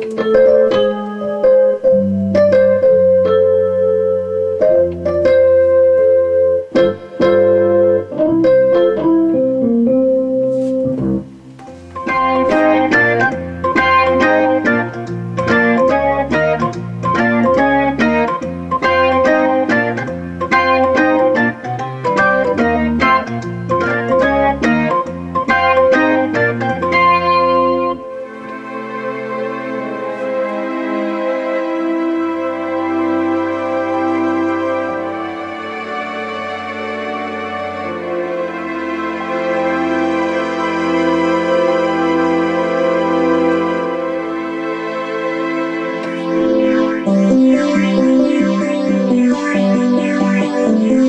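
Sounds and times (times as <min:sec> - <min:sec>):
electric piano chords: 0:00.0 - 0:51.0
rhythmic synth pattern: 0:00.0 - 0:51.0
sustained synth pad: 0:27.6 - 0:51.0.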